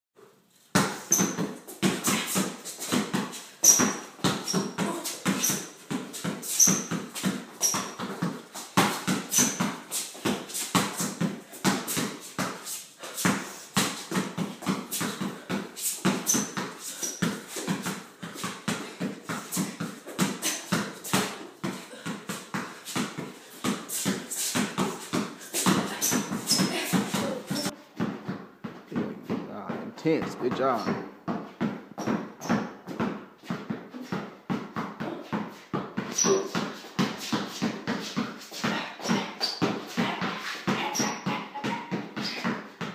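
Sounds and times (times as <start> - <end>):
basketball bouncing on concrete: 0.7 - 42.9.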